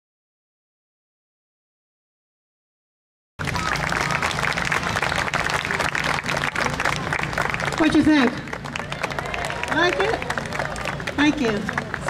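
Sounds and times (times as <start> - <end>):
audience applauding: 3.4 - 12.0.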